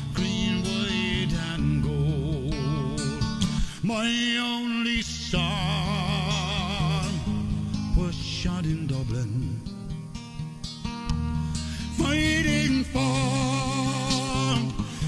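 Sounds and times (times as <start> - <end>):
man singing a folk ballad: 0.0 - 15.0.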